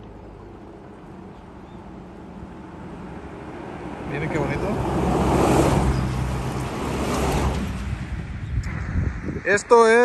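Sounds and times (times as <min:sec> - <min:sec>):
vehicle passing by: 0:02.6 - 0:08.5.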